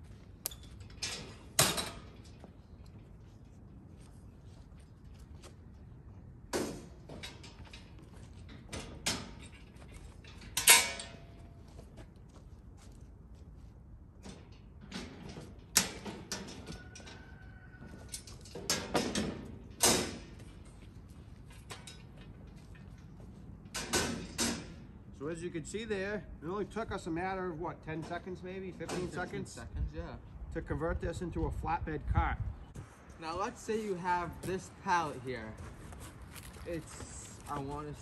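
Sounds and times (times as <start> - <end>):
metal panels clanking: 0.5 - 2.4, 6.5 - 11.6, 14.2 - 17.3, 18.0 - 20.8, 21.4 - 25.1, 28.0 - 29.4.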